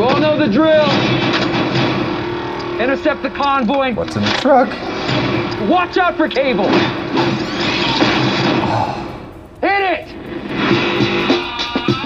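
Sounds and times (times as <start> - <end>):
film trailer music: 0.0 - 12.0
vehicle and action effects: 0.8 - 11.3.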